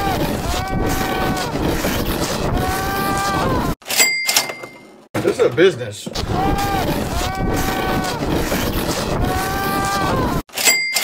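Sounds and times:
person crying out: 0:09.2 - 0:10.4.

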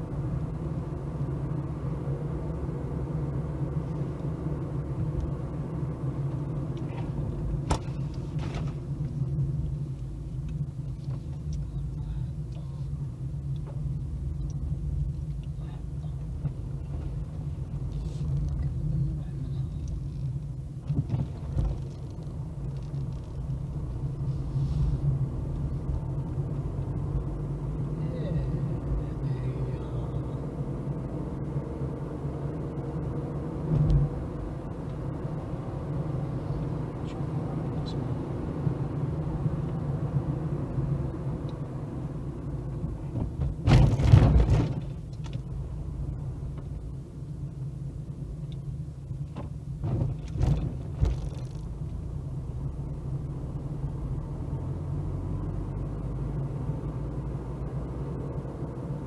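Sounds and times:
car engine and tyres rumble: 0:00.0 - 0:59.0.

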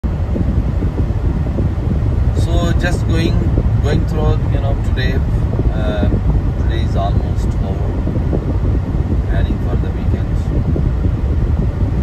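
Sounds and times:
tyre and wind noise in car: 0:00.0 - 0:12.0.

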